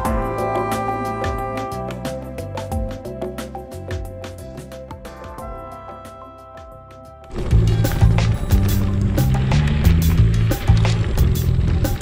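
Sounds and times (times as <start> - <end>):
background music with drum beat: 0.0 - 12.0.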